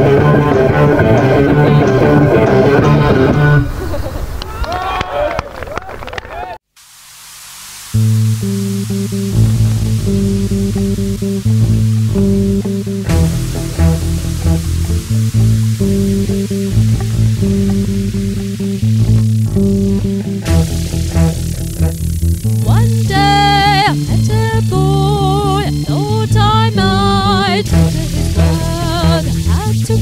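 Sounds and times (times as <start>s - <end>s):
rock song: 0.0s - 3.6s, 8.2s - 30.0s
bass guitar and guitar intro: 0.0s - 3.8s, 8.0s - 30.0s
faint hiss: 6.7s - 30.0s.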